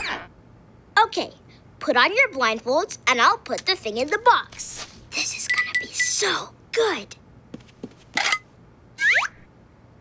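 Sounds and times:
falling cartoon whistle: 0:09.0 - 0:09.4.

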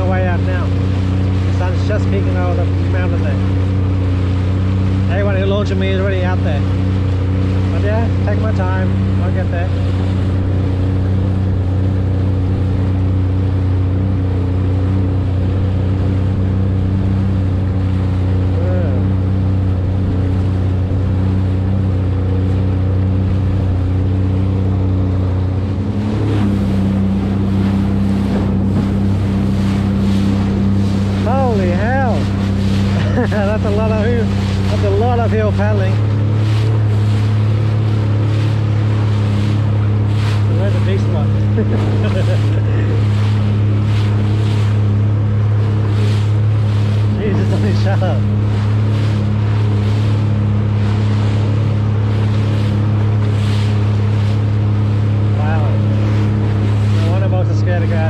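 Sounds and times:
hull slapping on waves: 0:00.0 - 0:58.0
jet ski engine running: 0:00.0 - 0:58.0.

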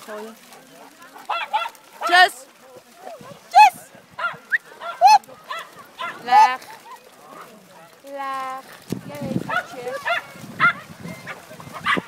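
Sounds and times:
dogs yapping: 0:00.5 - 0:02.3, 0:04.2 - 0:07.9, 0:09.5 - 0:12.0.

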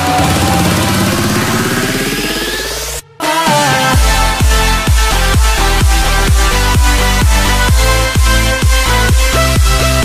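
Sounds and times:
electronic dance music build-up: 0:00.0 - 0:10.0.

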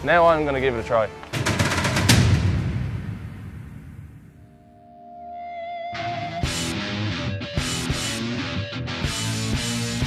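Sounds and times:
heavy low rumbling hit: 0:01.4 - 0:04.7.

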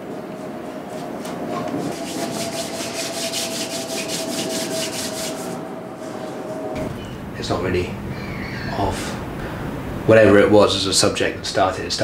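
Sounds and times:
faint steady hum: 0:00.0 - 0:12.0
paintbrush scrubbing: 0:00.9 - 0:06.4.

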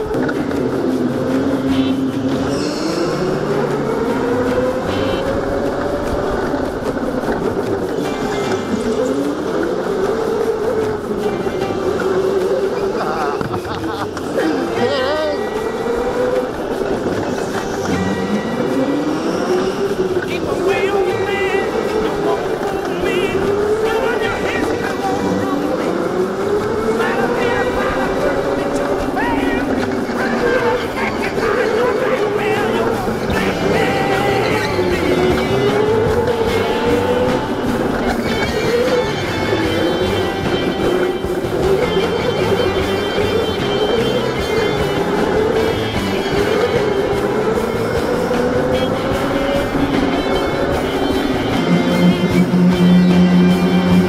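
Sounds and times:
go-kart motor: 0:00.0 - 0:54.0
high wavering squeals: 0:00.0 - 0:54.0
music: 0:00.0 - 0:54.0.

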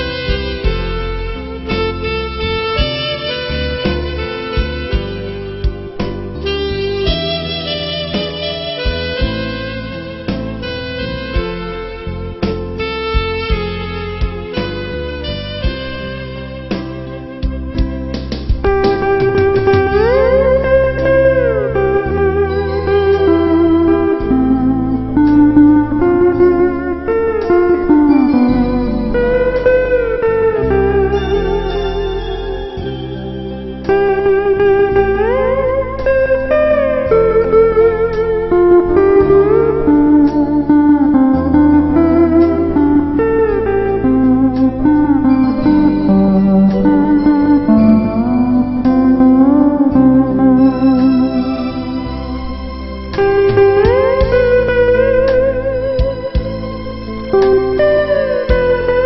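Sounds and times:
bass and chord accompaniment: 0:00.0 - 0:59.0
lap steel guitar melody: 0:00.0 - 0:59.0.

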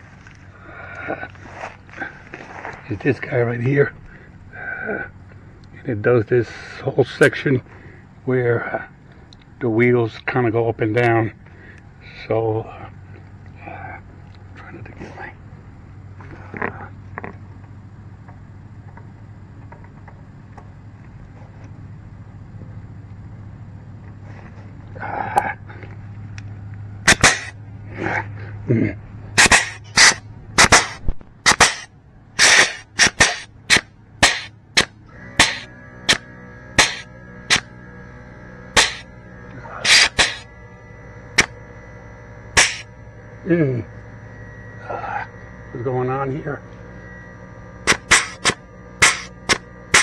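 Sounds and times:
low steady hum: 0:00.0 - 0:50.0
air grease gun bursts: 0:27.0 - 0:27.6, 0:29.4 - 0:37.7, 0:38.7 - 0:39.1, 0:39.8 - 0:40.5, 0:41.3 - 0:41.6, 0:42.5 - 0:42.9, 0:47.8 - 0:50.0.

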